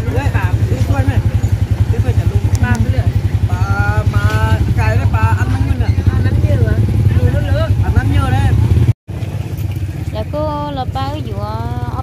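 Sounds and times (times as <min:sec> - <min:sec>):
people talking: 0:00.0 - 0:08.7, 0:10.1 - 0:12.0
engine idling rumble: 0:00.0 - 0:12.0.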